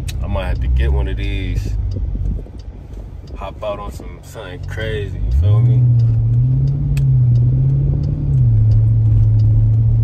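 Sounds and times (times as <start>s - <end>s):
car engine drone from inside cabin: 0.0s - 10.0s.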